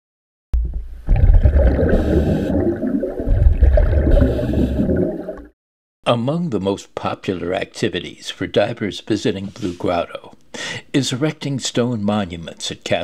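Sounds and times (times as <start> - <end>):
underwater bubbling rumble: 0.6 - 5.5.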